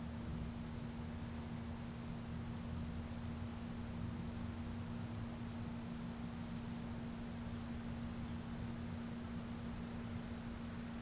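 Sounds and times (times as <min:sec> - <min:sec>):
cricket trilling: 0:00.0 - 0:11.0
low hum and hiss: 0:00.0 - 0:11.0.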